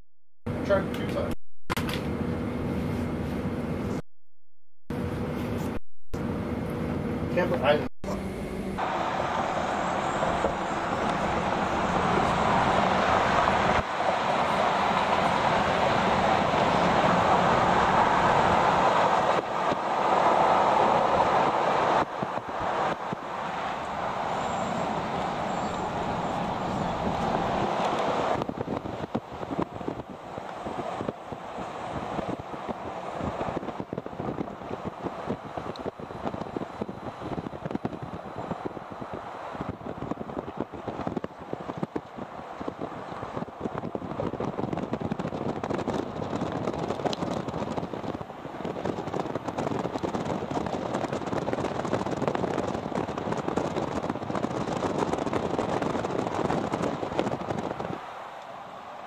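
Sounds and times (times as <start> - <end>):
road and wind noise in car: 0.5 - 4.0, 4.9 - 59.0.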